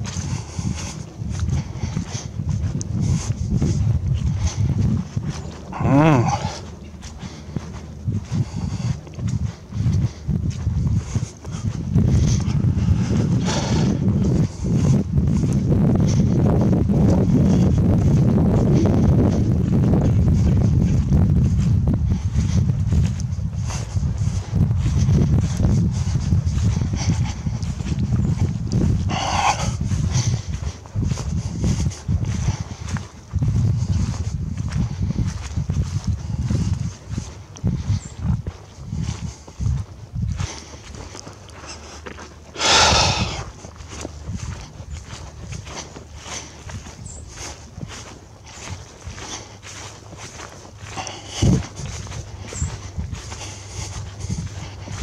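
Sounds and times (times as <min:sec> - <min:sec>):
footsteps on dry grass: 0:00.0 - 0:55.0
wind rumbling on microphone: 0:00.0 - 0:55.0.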